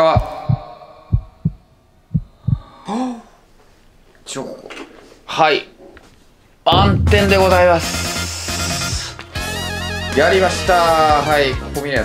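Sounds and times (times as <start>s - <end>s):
heartbeat double thumps: 0.2s - 2.6s, 6.7s - 8.1s.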